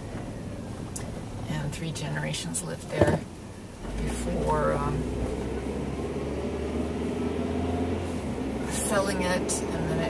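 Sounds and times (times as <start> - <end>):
car engine hum: 0.0 - 10.0
road noise: 0.0 - 10.0.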